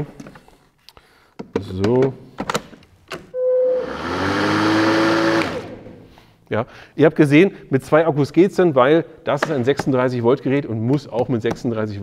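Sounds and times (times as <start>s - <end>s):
short steady tone: 3.4s - 4.1s
lawn mower blade motor whirring: 3.9s - 5.9s.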